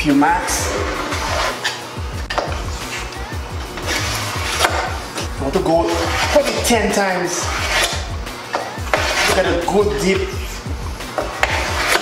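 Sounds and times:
background music: 0:00.0 - 0:12.0
knife scratching acrylic sheet: 0:00.6 - 0:01.8, 0:03.8 - 0:04.9, 0:05.8 - 0:09.8, 0:11.2 - 0:12.0.

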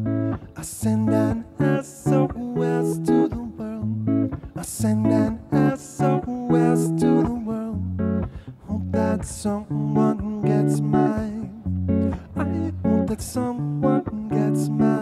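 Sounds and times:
electric guitar playing chords: 0:00.0 - 0:15.0.

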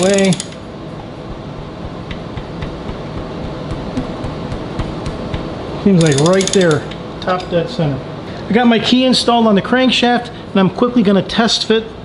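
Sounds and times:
ratchet clicks: 0:00.0 - 0:00.6, 0:06.0 - 0:07.0
workshop background noise: 0:00.0 - 0:10.4.

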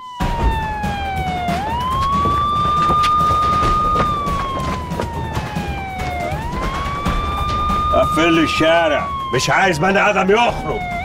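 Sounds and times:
police siren wailing: 0:00.0 - 0:11.0.

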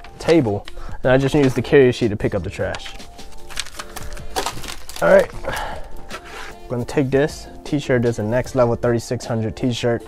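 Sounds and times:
faint background music: 0:00.0 - 0:10.0
plastic sheet crinkling: 0:02.6 - 0:06.6.

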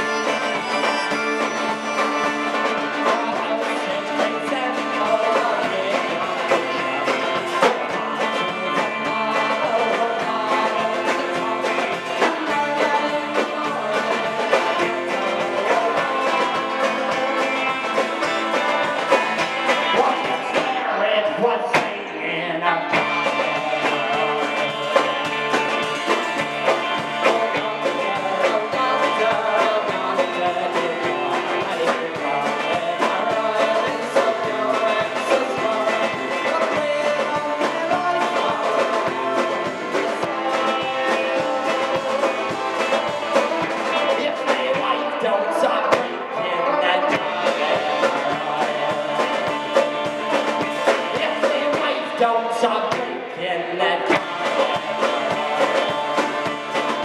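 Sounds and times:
steady drum beat: 0:00.0 - 0:22.0, 0:22.9 - 0:46.1, 0:46.8 - 0:53.1, 0:54.0 - 0:57.0
acoustic and electric guitars: 0:00.0 - 0:57.0
man singing lead: 0:00.0 - 0:57.0.

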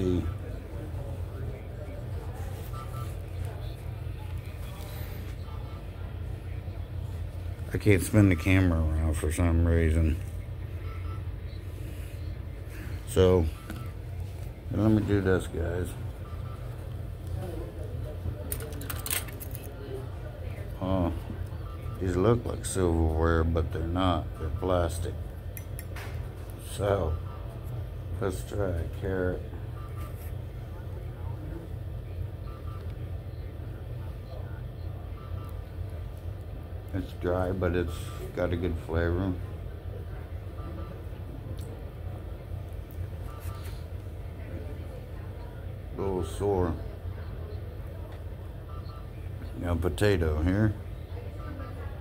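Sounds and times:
low machine hum: 0:00.0 - 0:52.0
short faint beep: 0:02.6 - 0:03.6, 0:10.7 - 0:12.0.

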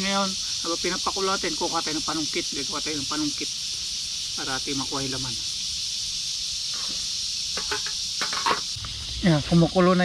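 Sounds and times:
insects hissing: 0:00.0 - 0:10.0.

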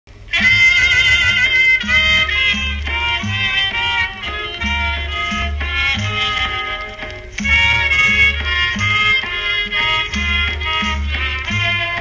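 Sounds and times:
old band recording: 0:00.1 - 0:12.0
steady bass line: 0:00.1 - 0:12.0
wavering high melody: 0:00.3 - 0:12.0.

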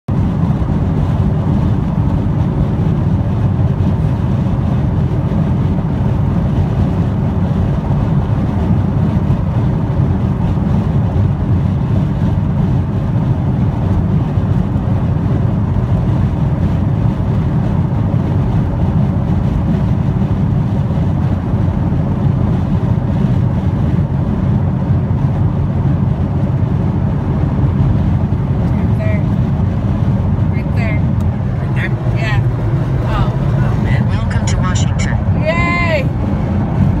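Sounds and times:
car cabin road noise: 0:00.1 - 0:37.0
tyre and engine rumble: 0:00.1 - 0:37.0.

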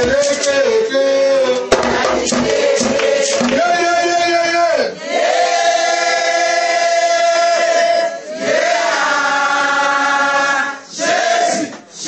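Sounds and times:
group singing a worship song: 0:00.0 - 0:03.8, 0:05.0 - 0:12.0.

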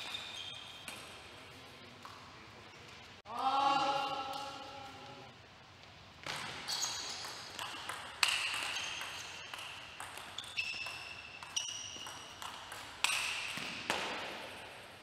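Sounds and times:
table tennis ball hits: 0:06.3 - 0:14.6.

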